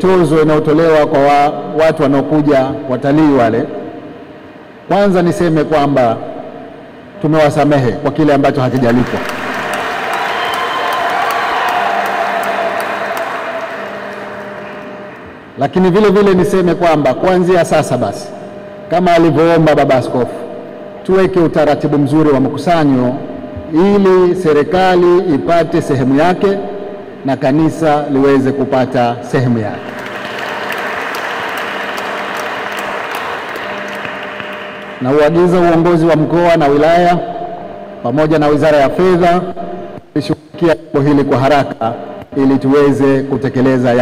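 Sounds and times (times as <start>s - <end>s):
audience clapping: 8.8s - 15.4s, 29.8s - 35.0s
audience cheering: 9.0s - 15.4s, 29.9s - 35.0s.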